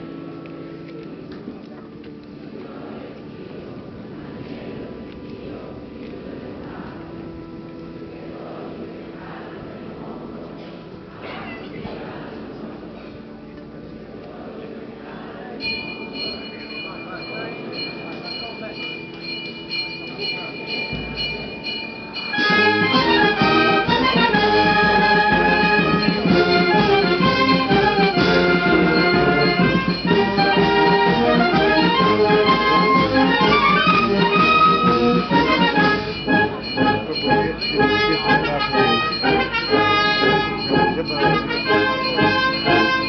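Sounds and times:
crowd murmur: 0.0 - 43.0
church bells ringing: 15.6 - 43.0.

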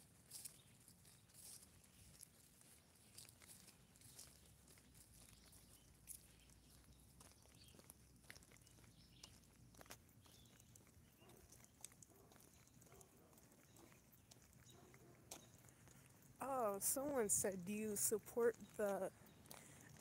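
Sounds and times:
footsteps on concrete: 0.0 - 20.0.

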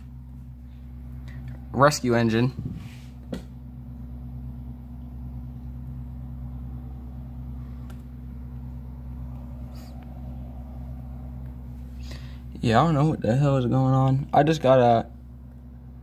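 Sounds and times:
low mechanical hum: 0.0 - 16.0
muffled road traffic: 0.0 - 16.0.

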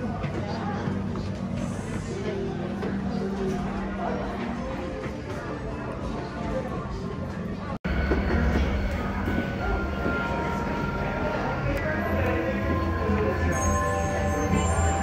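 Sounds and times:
faint background chatter: 0.0 - 15.0
ambient music with low drone: 7.9 - 15.0.

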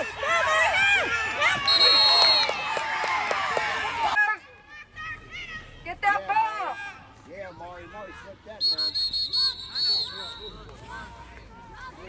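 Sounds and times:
distant shouting voices: 0.0 - 12.0
referee's pea whistle trilling: 1.6 - 2.6, 8.6 - 10.7.

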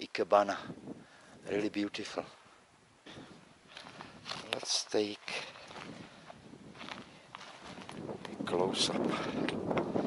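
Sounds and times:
faint footsteps on stony ground: 0.4 - 10.0.

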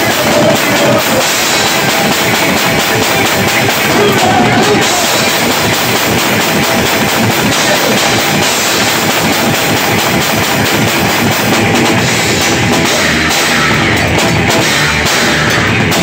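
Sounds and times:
fast drumming with crashing cymbals: 0.0 - 16.0
rock band playing: 0.0 - 16.0.

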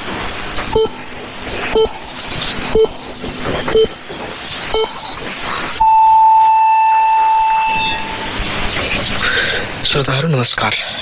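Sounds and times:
long steady radio beep: 0.3 - 1.0, 1.6 - 10.2.

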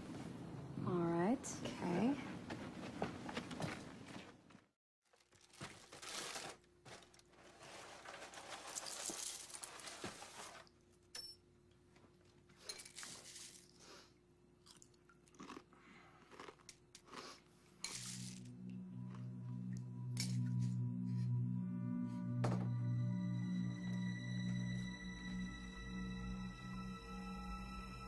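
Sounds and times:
cereal pouring into a bowl: 7.8 - 10.6, 12.9 - 13.8, 17.9 - 18.5
chewing crunches: 14.6 - 17.4
low sustained musical tone: 18.1 - 28.0.

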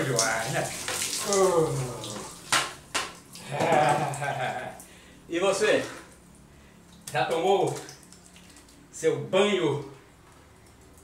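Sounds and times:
water poured and splashing: 0.0 - 4.3, 6.9 - 8.9.

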